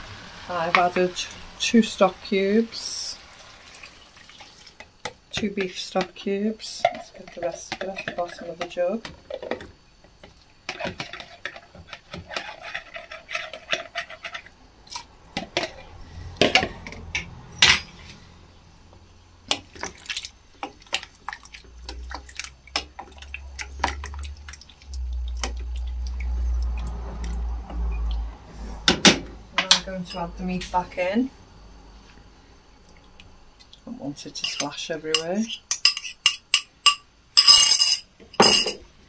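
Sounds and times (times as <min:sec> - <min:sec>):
stock pouring into a pot: 0:03.2 - 0:04.9
spoon clinking against a pot: 0:34.4 - 0:38.8.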